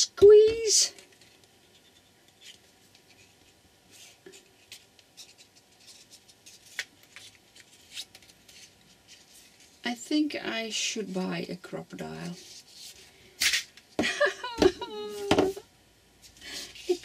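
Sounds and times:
paper rustling: 2.4 - 9.8.

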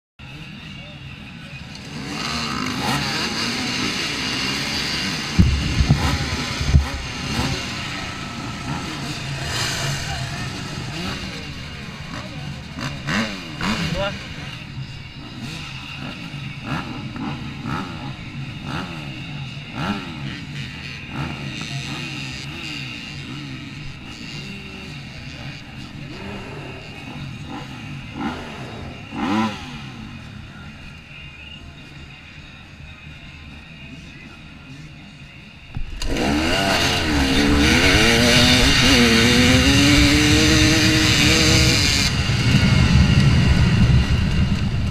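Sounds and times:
motorcycle engines revving: 0.2 - 44.9
heavy low thumps: 5.4 - 7.4.

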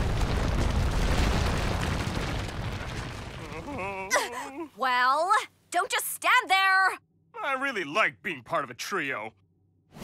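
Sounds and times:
cartoon explosion rumbling: 0.0 - 4.1.

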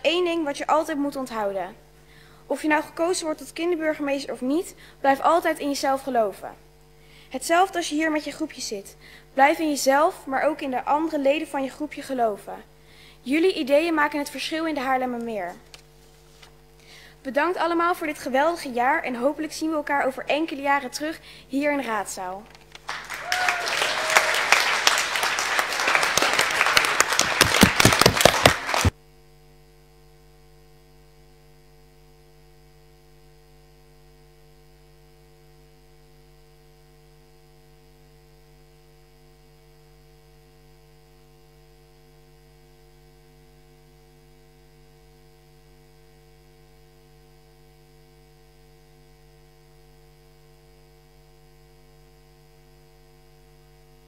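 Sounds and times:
faint steady hum: 0.0 - 54.0
audience applause: 22.7 - 28.9.

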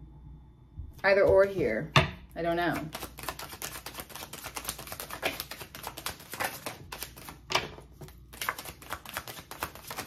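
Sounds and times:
cards being shuffled: 2.8 - 10.0.

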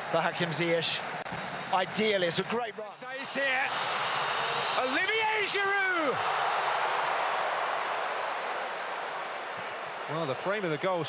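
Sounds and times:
stadium crowd roaring: 0.0 - 11.0.

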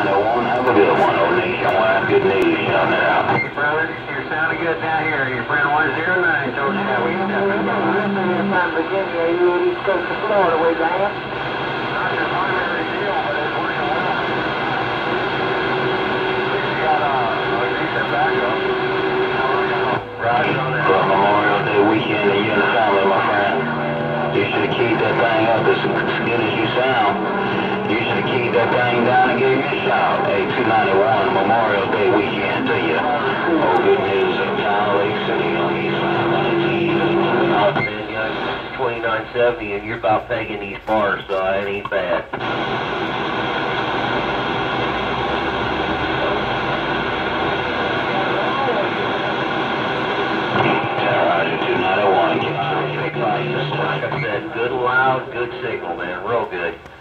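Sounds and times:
voices over radio speaker: 0.0 - 57.0
steady low tone: 17.4 - 38.5.

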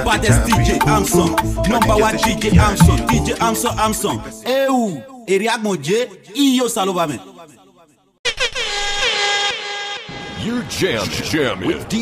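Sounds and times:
person speaking: 1.8 - 3.4.

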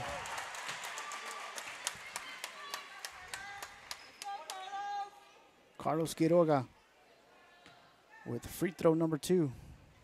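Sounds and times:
crowd clapping: 0.0 - 4.7.

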